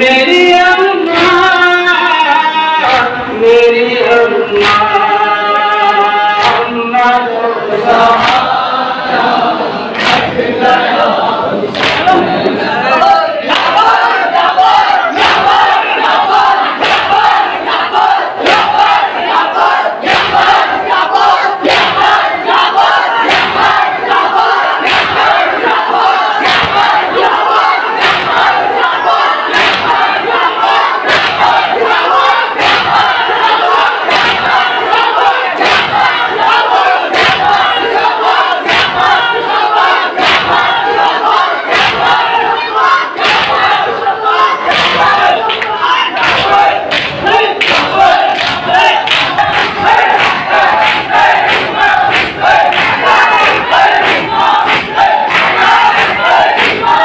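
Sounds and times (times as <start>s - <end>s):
crowd of men chanting and shouting: 0.0s - 57.0s
hand slaps on chests: 6.4s - 6.6s, 8.2s - 8.5s, 9.9s - 10.4s, 11.7s - 12.3s, 16.8s - 19.4s, 20.0s - 20.6s, 21.6s - 22.2s, 22.9s - 23.8s, 24.8s - 27.4s, 28.0s - 28.6s, 29.5s - 30.1s, 31.0s - 33.4s, 34.0s - 41.1s, 41.7s - 42.2s, 43.2s - 43.9s, 44.6s - 57.0s.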